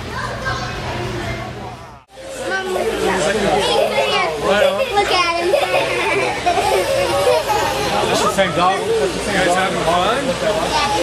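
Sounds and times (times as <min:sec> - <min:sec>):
children talking and calling out: 0:00.0 - 0:11.0
crowd chatter: 0:00.0 - 0:11.0.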